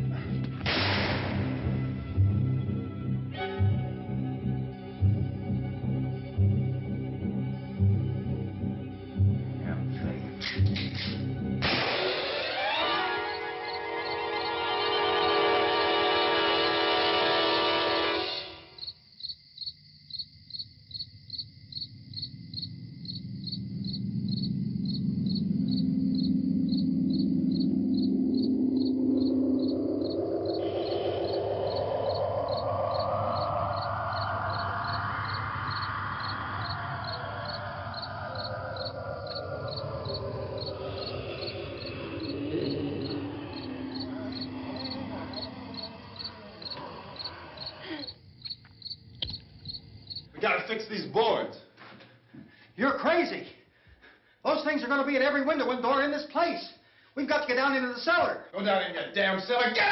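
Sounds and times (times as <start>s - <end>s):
crickets chirping: 1.4s - 59.9s
loud droning tone rising in pitch: 24.2s - 47.4s.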